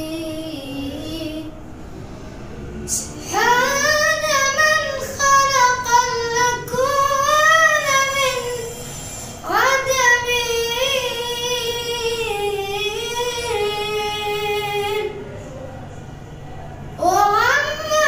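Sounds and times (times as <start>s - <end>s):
boy singing unaccompanied: 2.9s - 8.7s, 9.4s - 15.2s, 17.0s - 18.0s.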